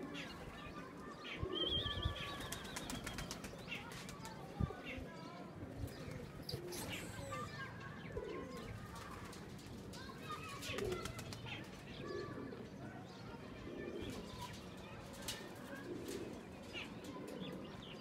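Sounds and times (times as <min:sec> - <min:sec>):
pigeons cooing: 0:01.3 - 0:03.4, 0:05.9 - 0:08.8, 0:10.6 - 0:12.8, 0:13.6 - 0:14.6, 0:15.5 - 0:18.0.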